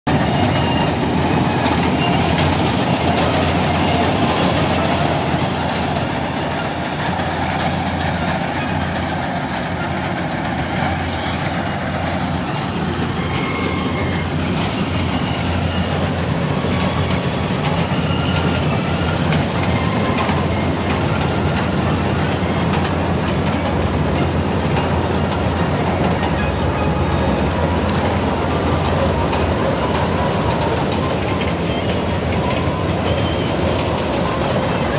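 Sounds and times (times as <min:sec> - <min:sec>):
combine harvester running: 0:00.1 - 0:34.9.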